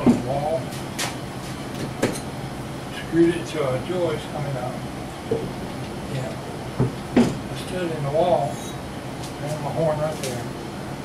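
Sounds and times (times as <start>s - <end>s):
steady background hum: 0.0s - 11.0s
knocks on wooden bracket: 6.8s - 7.4s.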